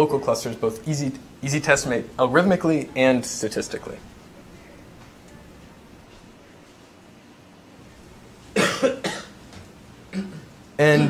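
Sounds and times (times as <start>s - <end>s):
man coughing: 8.6s - 9.4s.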